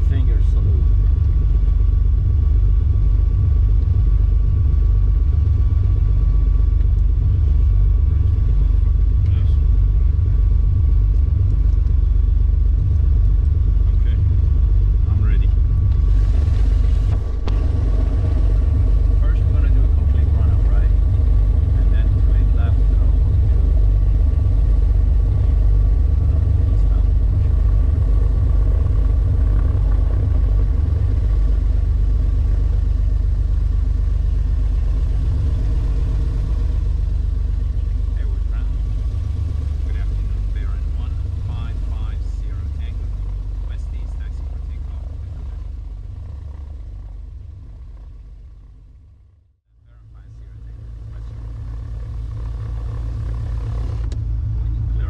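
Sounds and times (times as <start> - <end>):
twin piston engines rumbling: 0.0 - 55.0.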